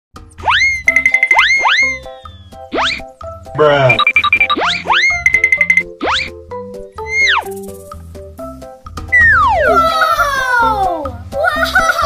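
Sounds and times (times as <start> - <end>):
playful background music: 0.2 - 12.0
cartoon rising whoops: 9.2 - 10.8.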